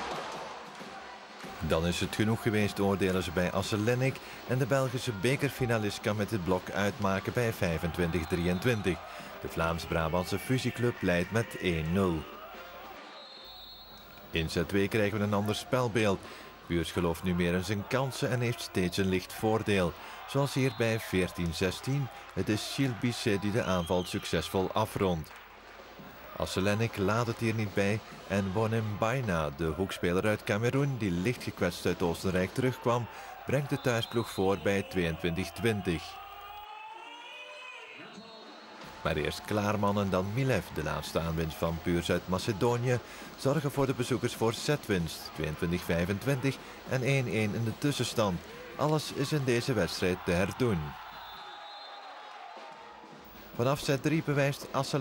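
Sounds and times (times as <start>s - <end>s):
crowd noise: 0.0s - 55.0s
sports hall background noise: 0.0s - 55.0s.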